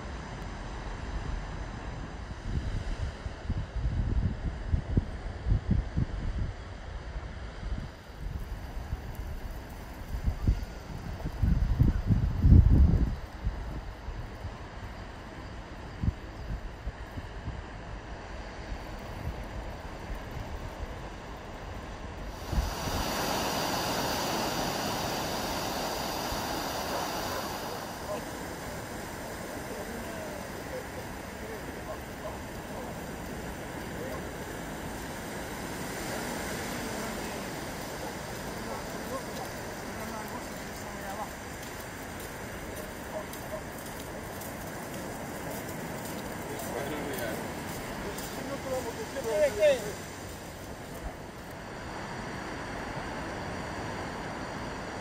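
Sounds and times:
waves breaking on beach: 7.4s - 12.3s, 13.4s - 55.0s.

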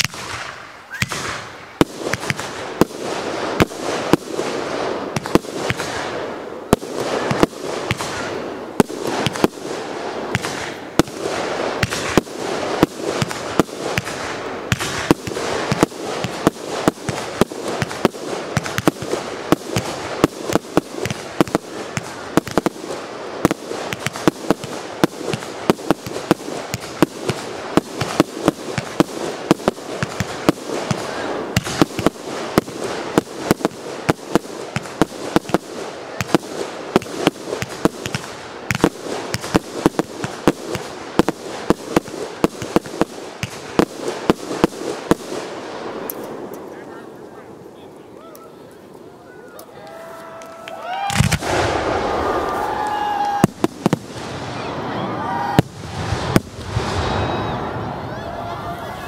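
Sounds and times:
fireworks bursting with bangs: 0.0s - 47.8s, 50.9s - 59.0s
fireworks crackle: 0.0s - 59.0s.

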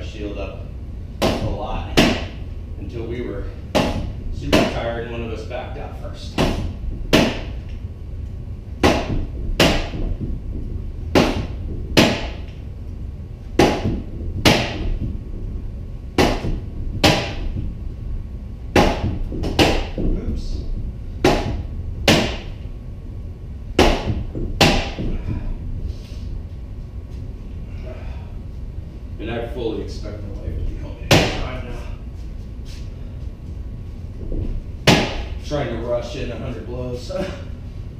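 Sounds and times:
low steady hum: 0.0s - 37.9s.

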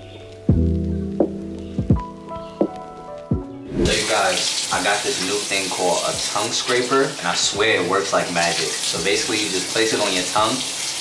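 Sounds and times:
music with plucked notes: 0.0s - 3.8s.

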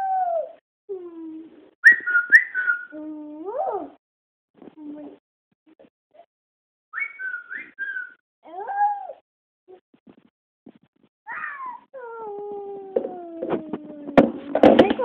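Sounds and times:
toddler wavering vocalizing: 0.0s - 1.5s, 8.4s - 9.2s, 11.3s - 14.2s.

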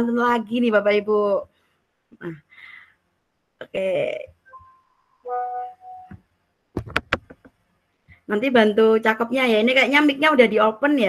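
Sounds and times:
steady musical tone: 4.5s - 6.2s.

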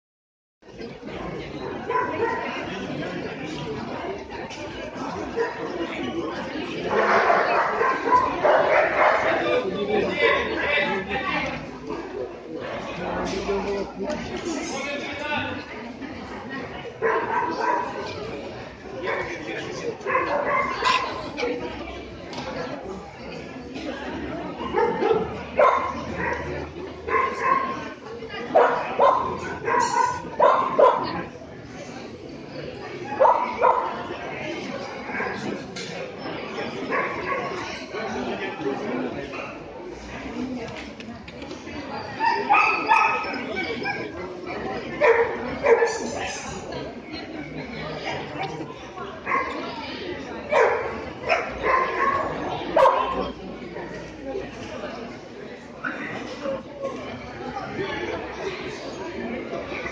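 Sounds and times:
dog barking: 17.0s - 18.0s, 20.0s - 21.2s, 24.7s - 26.5s, 27.1s - 27.8s, 28.5s - 31.1s, 33.2s - 33.9s, 42.3s - 43.3s, 45.0s - 46.0s, 50.5s - 53.2s.

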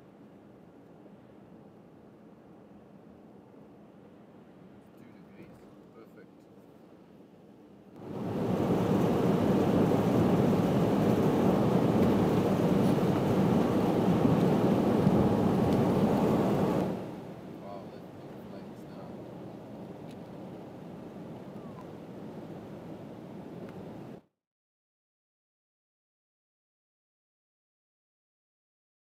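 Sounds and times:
car wind and road noise: 6.6s - 24.2s.

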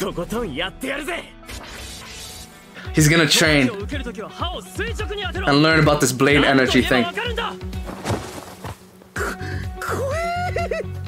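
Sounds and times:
background music: 0.0s - 11.0s
person crying out: 9.2s - 11.0s.

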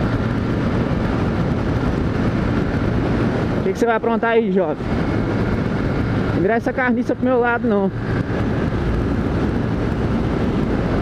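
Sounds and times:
motorcycle cruising: 0.0s - 11.0s
wind rushing over microphone: 0.0s - 11.0s.

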